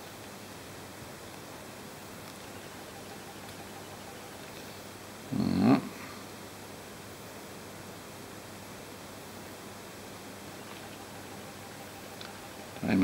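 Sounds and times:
faint thin high whine: 0.0 - 7.4, 8.0 - 13.0
room tone hiss: 0.0 - 13.0.

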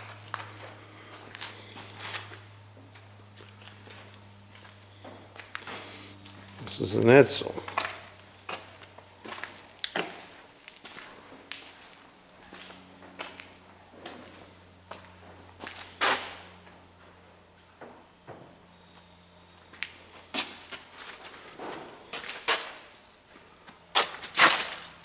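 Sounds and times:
footsteps on concrete: 0.0 - 6.7, 7.6 - 16.2, 19.6 - 25.0.

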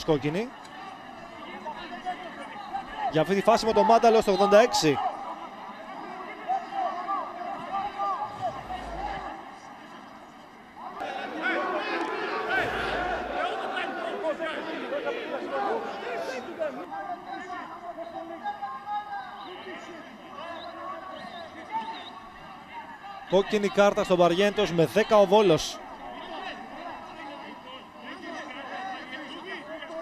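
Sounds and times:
men shouting and talking: 0.0 - 30.0.

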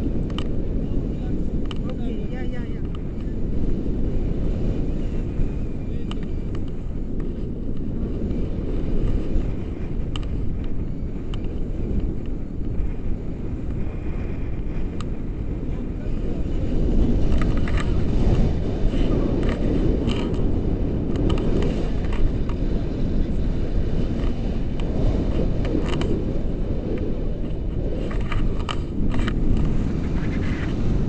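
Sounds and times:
wind rushing over microphone: 0.0 - 31.0.

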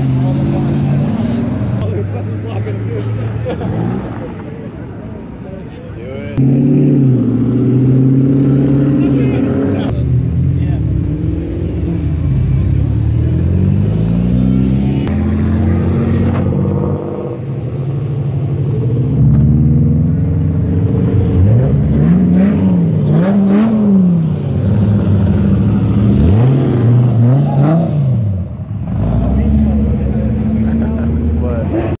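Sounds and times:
vehicles accelerating away: 0.0 - 32.0.

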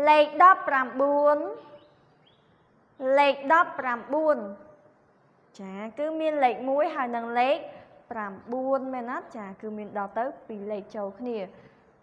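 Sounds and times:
woman speaking: 0.0 - 1.8, 3.0 - 4.7, 5.5 - 11.6.

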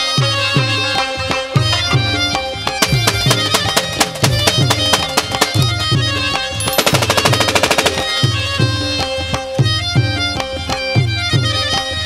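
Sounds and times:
folk music with tabla and keyboard: 0.0 - 12.0
automatic rifle fire: 2.8 - 5.8, 6.6 - 8.4.

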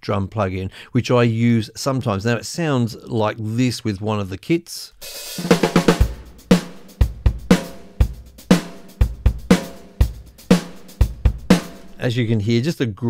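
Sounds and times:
drum kit playing a beat: 5.0 - 12.2.

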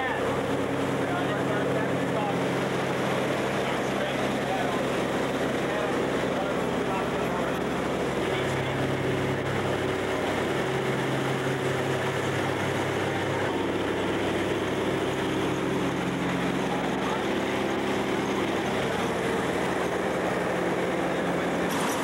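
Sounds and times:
propeller plane engines droning: 0.0 - 22.0.

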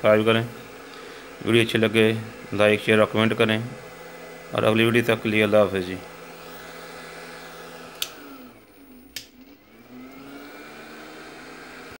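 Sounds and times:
inverter fan whir: 0.0 - 12.0
inverter click: 7.9 - 8.3, 9.1 - 9.6.

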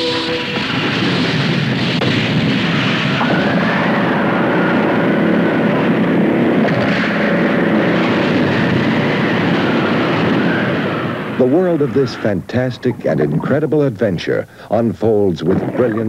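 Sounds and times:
faint wavering high tone: 0.0 - 1.3
heavy waves: 0.0 - 4.7
wind: 0.0 - 16.0.

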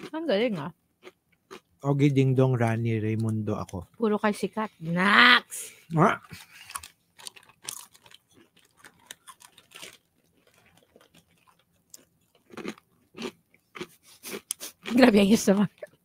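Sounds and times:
person chewing crunchy nuts: 0.0 - 2.0, 6.3 - 15.1.

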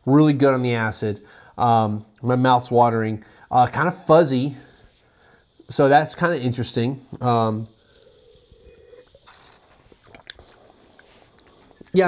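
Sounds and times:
breath hiss while sipping: 1.2 - 1.6, 3.2 - 12.0
mouth and swallowing clicks: 7.9 - 12.0.

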